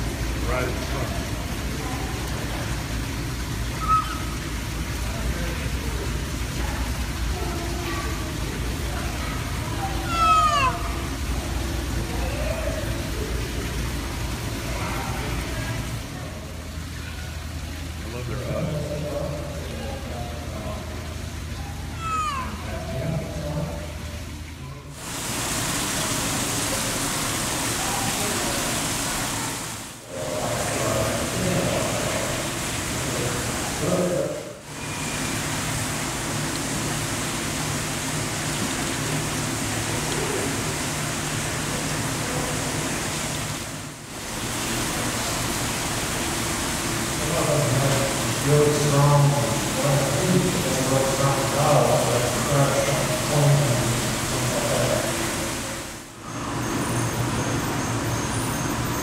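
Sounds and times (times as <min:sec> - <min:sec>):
outdoor hiss: 0:00.0 - 0:59.0
faint voices: 0:03.8 - 0:25.0, 0:27.6 - 0:34.6.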